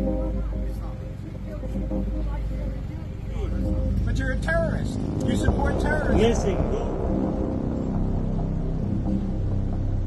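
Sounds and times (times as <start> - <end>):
faint indistinct voices: 0.0 - 6.8
city street traffic rumble: 0.0 - 10.0.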